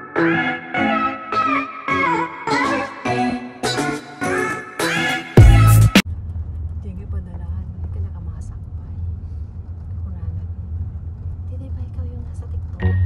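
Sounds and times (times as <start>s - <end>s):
car interior rumble: 5.4s - 13.0s.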